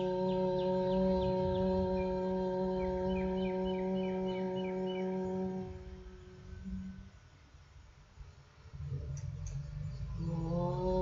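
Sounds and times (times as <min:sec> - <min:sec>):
held musical drone: 0:00.0 - 0:11.0.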